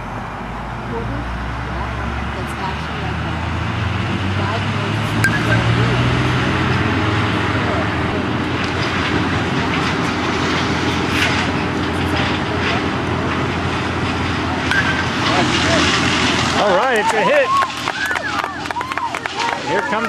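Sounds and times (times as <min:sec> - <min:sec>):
background voices: 0:04.1 - 0:17.5.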